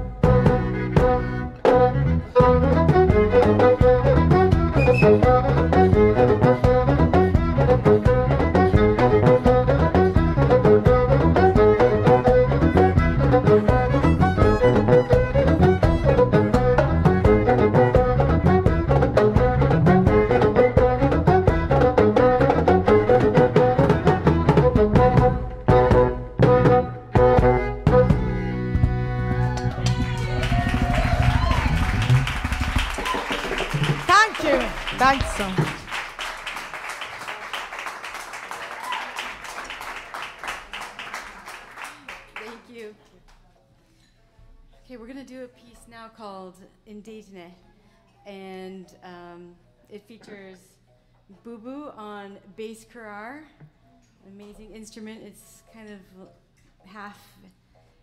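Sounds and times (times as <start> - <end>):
band playing fast groove: 0.0 - 35.8
audience applauding and cheering: 29.3 - 42.6.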